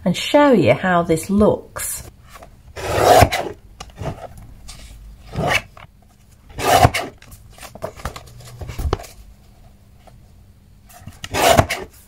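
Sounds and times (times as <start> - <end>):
paper trimmer cutting paper: 2.8 - 4.1, 6.5 - 7.2, 11.2 - 11.9.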